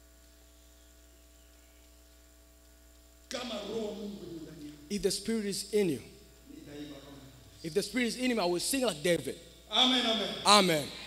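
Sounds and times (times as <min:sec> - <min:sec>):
faint mains hum: 0:00.0 - 0:11.0
room noise: 0:00.0 - 0:11.0
person speaking: 0:03.3 - 0:11.0.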